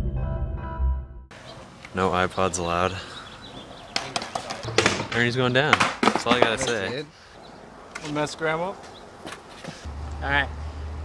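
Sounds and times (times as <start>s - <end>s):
man talking: 1.9s - 3.2s, 5.1s - 7.1s.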